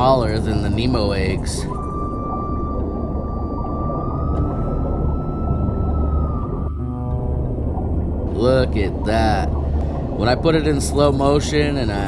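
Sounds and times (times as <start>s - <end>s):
underwater low rumble: 0.0s - 12.0s.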